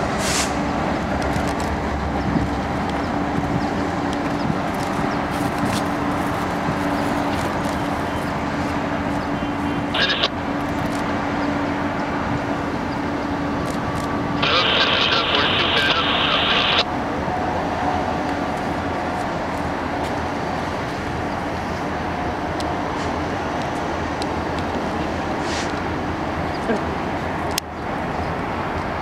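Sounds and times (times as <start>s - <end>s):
diesel locomotive engine rumble: 0.0s - 29.0s.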